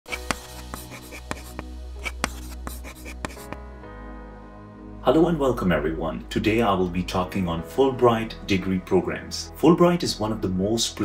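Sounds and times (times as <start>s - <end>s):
chalk tapping on blackboard: 0.1s - 3.6s
background music with held notes: 0.1s - 11.0s.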